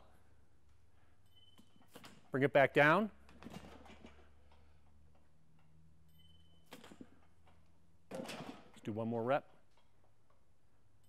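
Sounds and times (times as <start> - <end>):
low room hum: 0.0 - 11.0
faint high beep: 1.2 - 1.8, 6.0 - 6.7.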